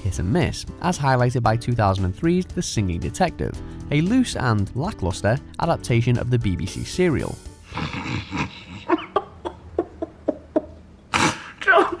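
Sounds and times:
man chuckling: 7.7 - 12.0.

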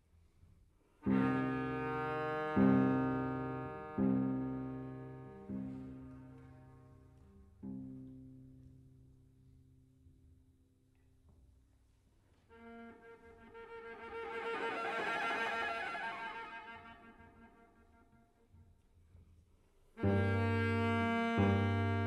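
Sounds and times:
cello notes: 1.0 - 8.7, 12.3 - 18.4, 20.0 - 22.0.

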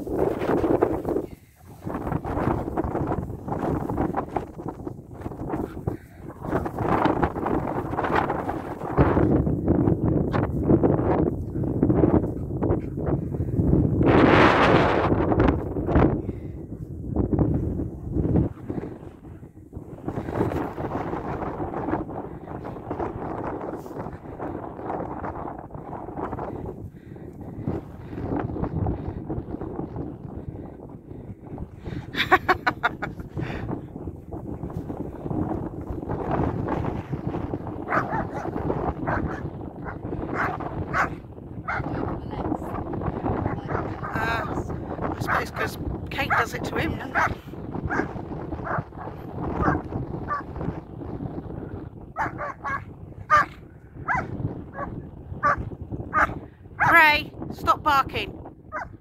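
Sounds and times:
dogs barking and growling: 37.8 - 42.0, 43.4 - 44.6, 47.1 - 50.5, 52.1 - 56.9, 58.7 - 59.0.

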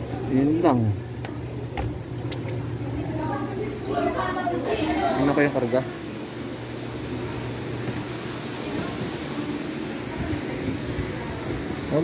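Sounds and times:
refrigerator compressor humming: 0.0 - 12.0.

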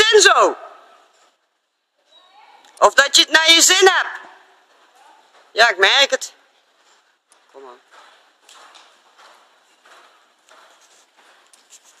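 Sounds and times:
horse cantering on sand: 3.7 - 12.0.

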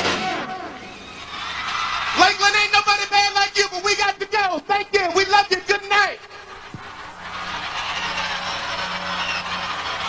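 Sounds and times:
audience cheering: 0.0 - 10.0
high shrill screams: 0.7 - 2.8, 7.4 - 10.0.

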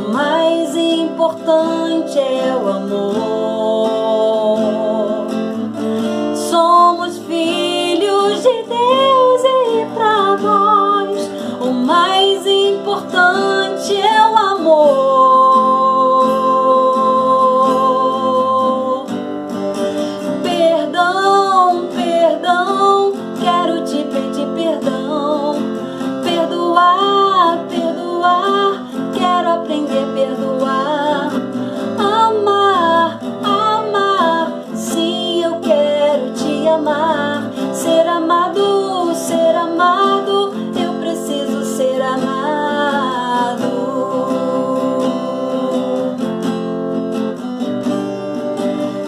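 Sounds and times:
woman singing worship song: 0.0 - 5.6, 6.3 - 19.2, 20.3 - 46.6
acoustic guitar: 0.0 - 49.0.

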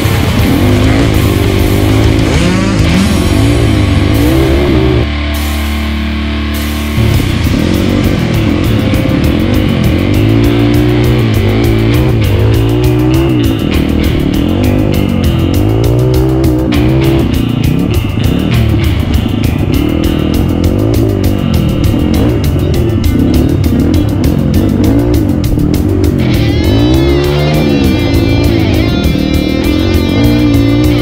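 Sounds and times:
motorcycle engine revving: 0.0 - 31.0
music with steady beat: 0.0 - 31.0.

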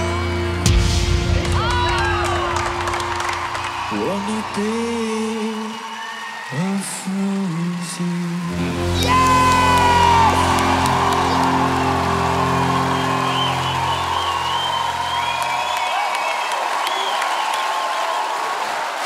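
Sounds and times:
live band holding a rock chord: 0.0 - 5.3, 8.5 - 15.9
audience cheering and whooping: 0.6 - 19.0.

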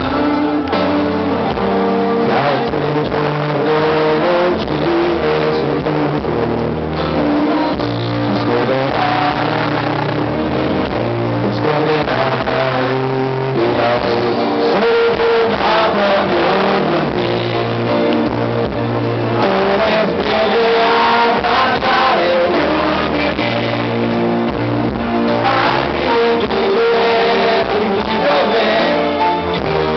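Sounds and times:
live pop-rock band playing: 0.0 - 29.9
male lead vocal: 0.0 - 29.9.

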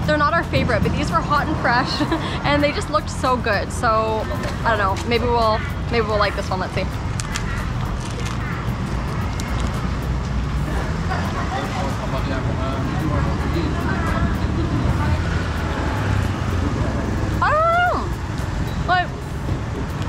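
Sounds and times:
road traffic rumbling: 0.0 - 20.0.

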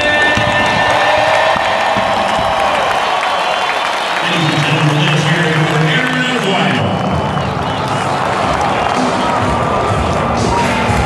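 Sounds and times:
stadium crowd cheering and applauding: 0.0 - 11.0.

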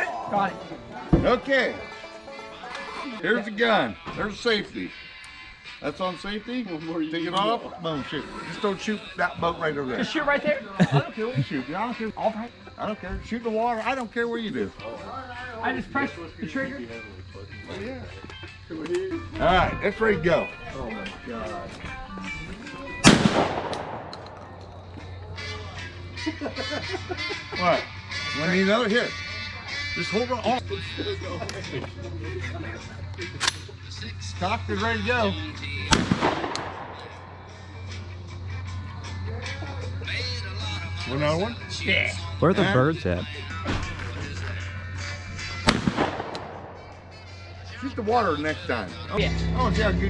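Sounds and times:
shotgun shot: 23.0 - 24.5, 35.9 - 37.4, 45.6 - 47.0.

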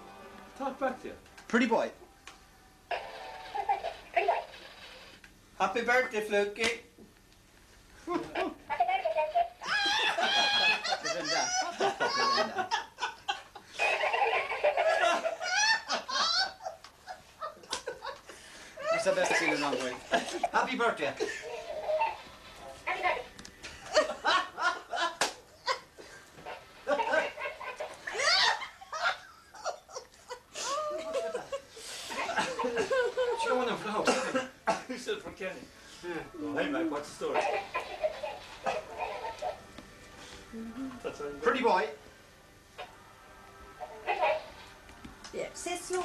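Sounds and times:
parrot laugh-like notes: 8.5 - 18.2, 37.3 - 39.6
person coughing: 34.0 - 35.0.

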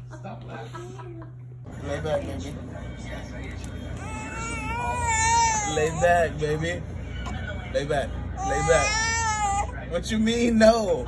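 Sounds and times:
infant crying: 4.0 - 6.3, 8.4 - 9.8.

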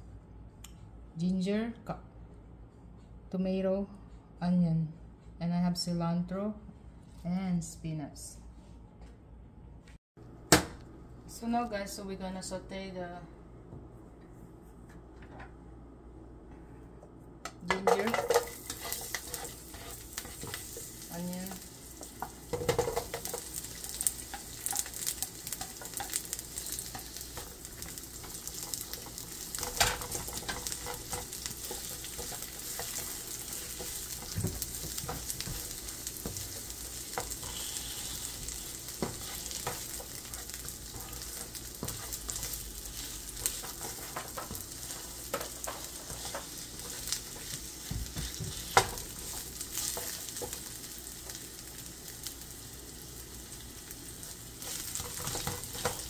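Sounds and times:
spatula scraping a pan: 17.8 - 21.0, 22.2 - 50.6, 54.6 - 56.0
food sizzling in oil: 17.8 - 56.0.

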